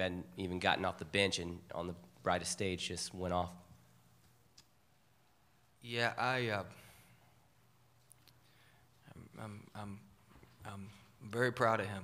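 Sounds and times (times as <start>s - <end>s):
man talking: 0.0s - 3.7s, 5.8s - 7.0s, 9.0s - 12.0s.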